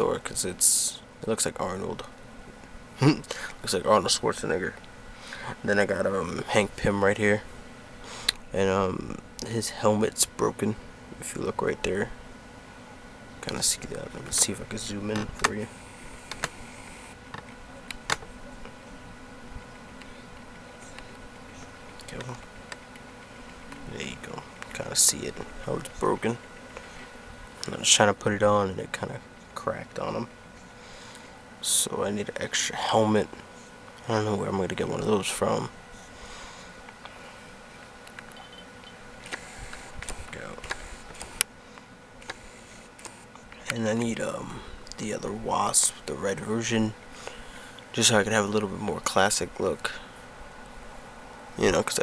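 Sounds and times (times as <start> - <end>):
faint steady hum: 0.0 - 52.0
camera zoom whir: 15.4 - 18.3, 38.1 - 41.5, 42.2 - 43.7.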